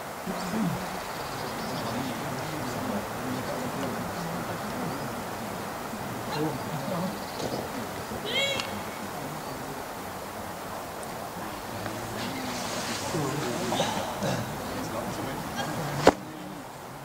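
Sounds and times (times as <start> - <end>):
people talking indistinctly: 0.0 - 17.0.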